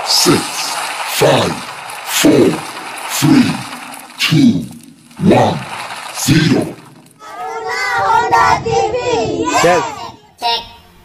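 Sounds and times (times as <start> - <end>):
children singing together: 7.2 - 10.1.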